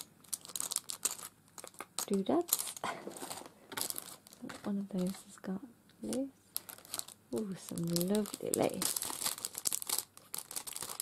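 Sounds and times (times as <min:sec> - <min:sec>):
cellophane crinkling: 0:00.0 - 0:05.4, 0:06.0 - 0:11.0.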